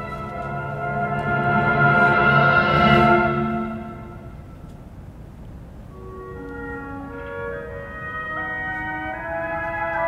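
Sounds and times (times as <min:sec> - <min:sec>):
orchestra playing held chord: 0:00.0 - 0:04.7.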